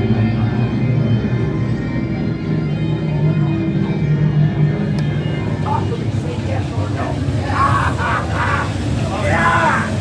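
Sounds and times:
low droning held tones: 0.0s - 10.0s
people's voices: 0.0s - 10.0s.

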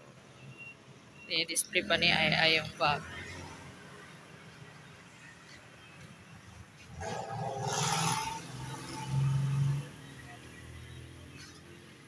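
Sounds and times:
motor vehicle passing: 6.8s - 12.0s.

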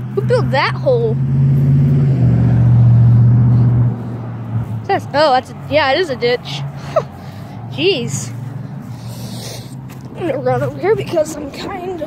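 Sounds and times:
passing vehicle engine drone: 0.0s - 12.0s.

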